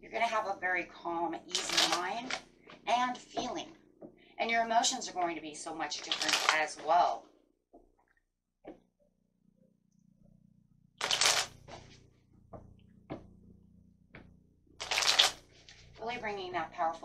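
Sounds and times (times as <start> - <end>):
cards being shuffled: 1.5 - 2.4, 6.0 - 6.8, 11.0 - 11.9, 14.8 - 15.8.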